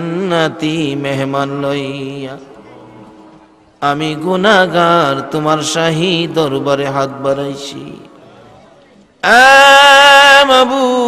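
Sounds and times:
man chanting a prayer: 3.8 - 8.6.

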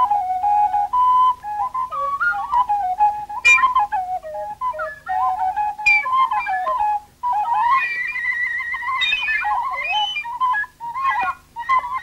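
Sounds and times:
flute solo melody: 0.0 - 12.0.

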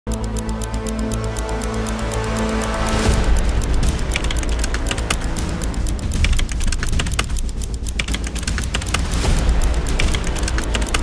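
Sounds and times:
rapid keyboard typing clicks: 0.0 - 11.0.

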